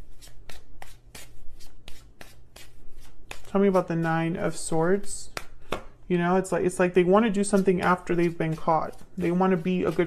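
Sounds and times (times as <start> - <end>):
cards being shuffled: 0.0 - 6.0, 7.4 - 10.0.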